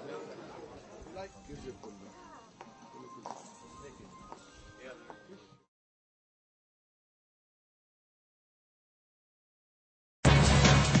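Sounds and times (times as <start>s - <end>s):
voices chattering: 0.0s - 5.7s
music playing: 1.0s - 5.7s, 10.2s - 11.0s.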